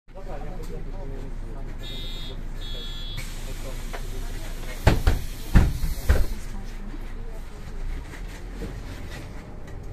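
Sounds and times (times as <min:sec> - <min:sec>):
bus doors closing with thuds: 0:03.0 - 0:06.6.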